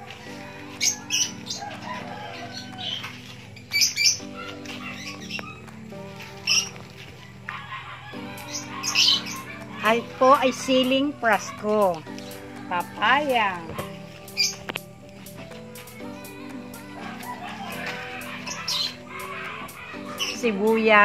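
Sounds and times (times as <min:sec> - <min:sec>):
soft music of held chords: 0:00.0 - 0:21.0
sharp bird chirps: 0:08.3 - 0:09.7.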